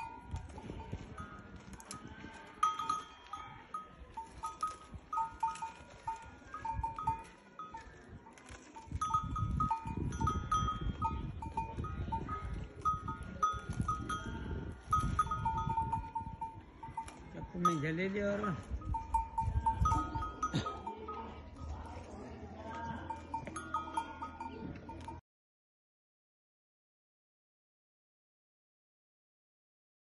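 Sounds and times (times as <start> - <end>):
livestock bells clinking: 0.0 - 25.2.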